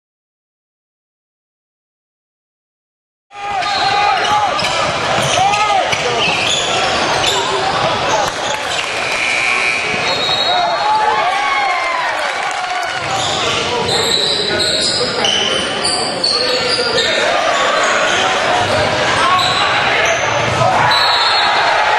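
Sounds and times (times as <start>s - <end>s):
voices of players and spectators: 3.3s - 21.9s
sneaker squeaks: 3.6s - 7.7s, 8.4s - 10.8s, 13.0s - 21.5s.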